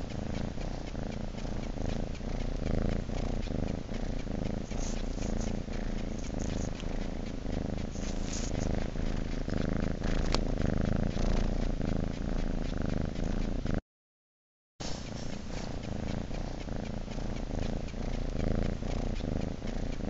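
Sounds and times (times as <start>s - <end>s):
cat purring: 0.0s - 13.8s, 14.8s - 20.0s.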